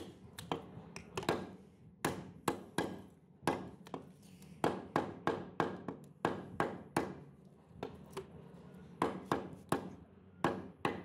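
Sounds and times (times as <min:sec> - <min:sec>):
cleaver chopping on wooden block: 0:01.2 - 0:04.0.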